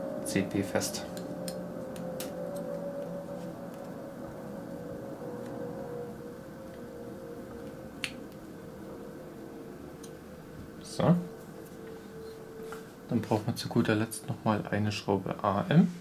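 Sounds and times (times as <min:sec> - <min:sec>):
faint hum: 0:00.0 - 0:16.0.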